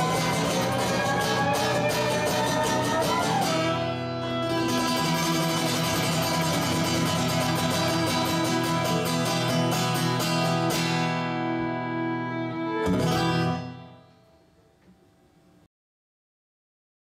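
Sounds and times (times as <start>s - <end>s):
fiddle playing: 0.0s - 14.1s
acoustic guitar strumming: 0.0s - 14.4s.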